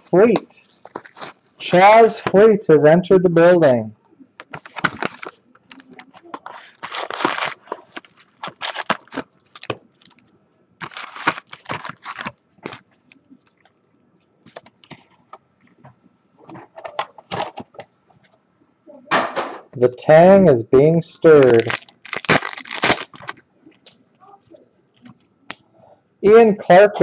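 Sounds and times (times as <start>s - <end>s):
foil wrappers crinkling: 0.0s - 1.6s, 4.4s - 13.9s, 21.4s - 24.0s.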